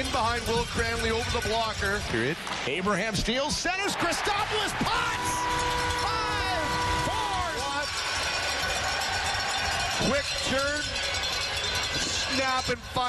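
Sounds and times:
crowd cheering: 3.6 - 12.6
arena goal horn: 4.9 - 7.8.

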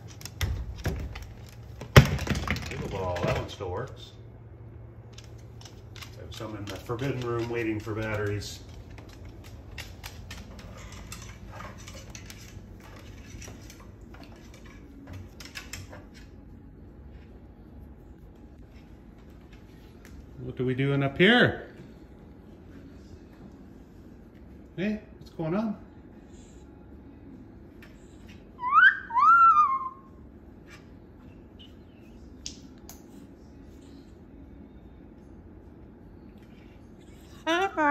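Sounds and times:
cockatoo whistling: 28.6 - 30.2.

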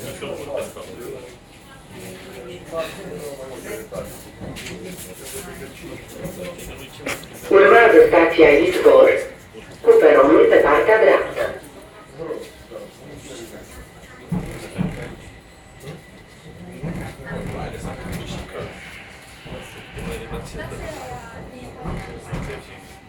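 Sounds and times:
metro train car running: 0.0 - 23.0
person speaking loudly: 7.5 - 11.6.

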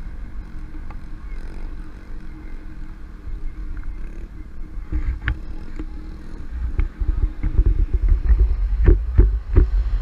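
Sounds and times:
car driving drone: 0.0 - 10.0
wind rumble on microphone: 0.0 - 10.0.

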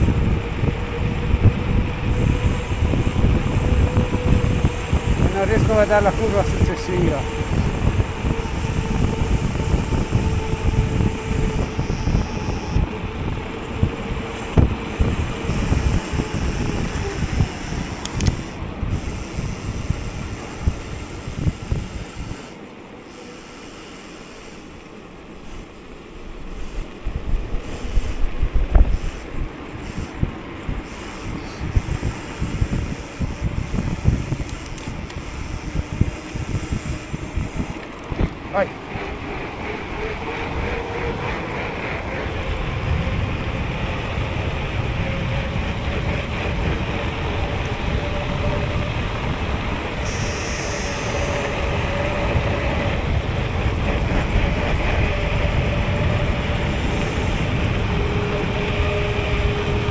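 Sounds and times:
wind buffeting microphone: 0.0 - 22.7, 25.1 - 59.9
bike tyres rumbling on asphalt: 0.0 - 23.2, 24.9 - 59.9.

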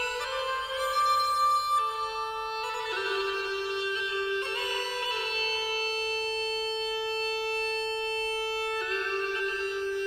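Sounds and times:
bagpipe held note: 0.0 - 10.0.

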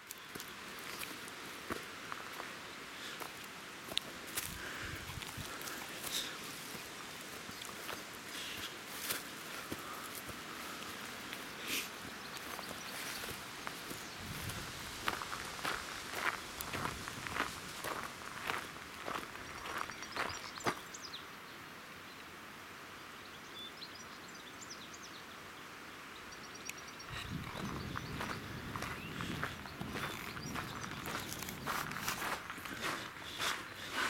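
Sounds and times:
footsteps on gravel: 3.2 - 20.8, 27.2 - 34.0.

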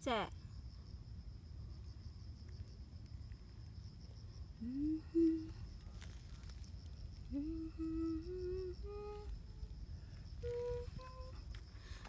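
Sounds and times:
faint high insect trill: 0.0 - 12.0
woman humming: 4.6 - 5.7, 7.2 - 9.7, 10.4 - 11.6.

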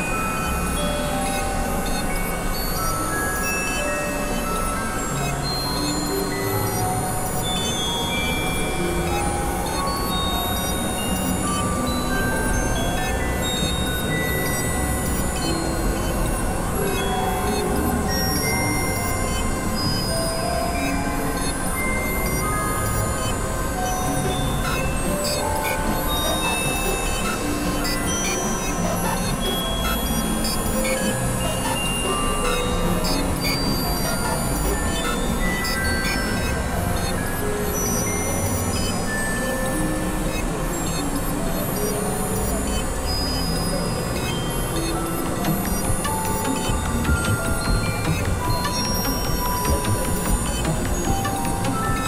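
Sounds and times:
layered experimental electronic music: 0.0 - 52.0.

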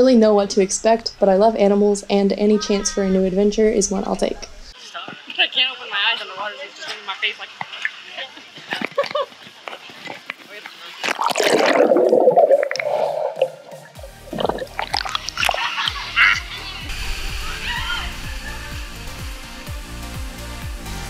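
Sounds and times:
pool water splashing: 2.9 - 19.2
electronic music: 11.6 - 21.0.

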